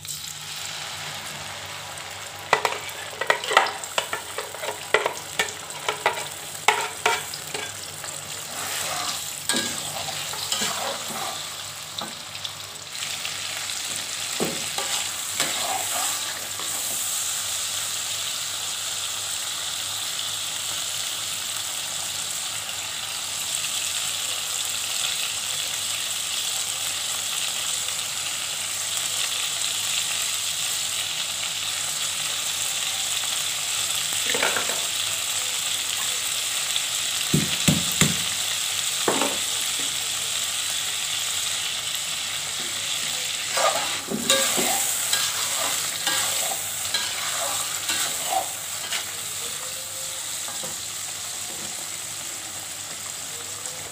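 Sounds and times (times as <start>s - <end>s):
paste sizzling in oil: 0.0s - 24.1s, 30.0s - 53.8s
metal spatula scraping wok: 2.5s - 11.8s, 14.6s - 17.2s, 43.4s - 49.6s.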